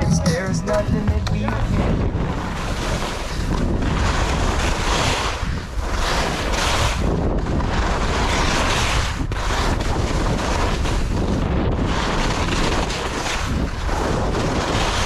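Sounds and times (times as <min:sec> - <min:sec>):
wind buffeting microphone: 0:01.5 - 0:15.0
skis scraping over snow: 0:04.1 - 0:07.0, 0:07.8 - 0:11.2.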